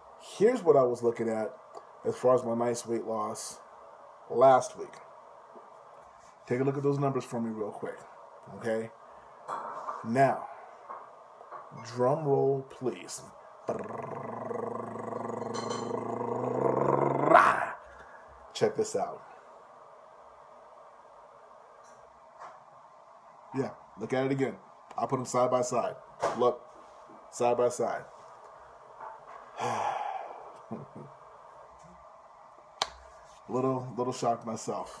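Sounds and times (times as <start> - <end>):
man sighing: 29.6 - 30.8.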